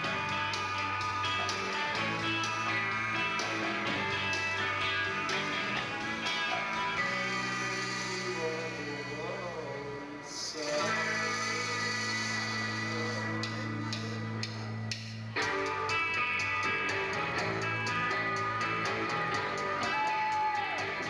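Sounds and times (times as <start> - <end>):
rock band playing live: 0.0 - 10.1, 10.8 - 21.0
bass guitar: 0.0 - 21.0
strummed electric guitars: 0.0 - 21.0.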